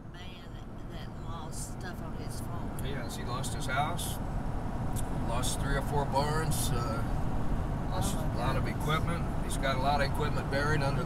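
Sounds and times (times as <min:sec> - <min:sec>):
road and engine rumble: 0:00.0 - 0:11.0
people talking: 0:00.1 - 0:04.2, 0:05.2 - 0:07.0, 0:07.9 - 0:11.0.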